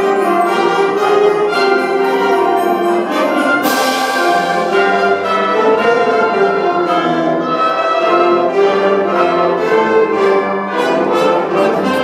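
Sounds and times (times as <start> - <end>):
concert band playing fanfare: 0.0 - 6.1
percussion strikes: 0.0 - 7.3.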